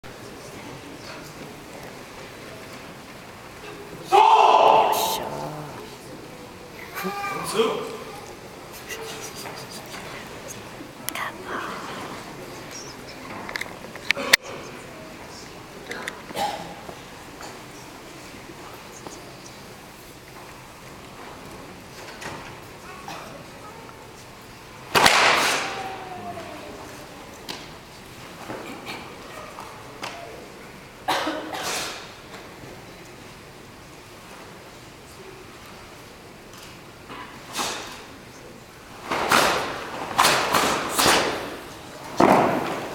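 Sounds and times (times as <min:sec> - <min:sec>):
whispered voices: 0:00.1 - 0:24.9, 0:25.5 - 0:42.9.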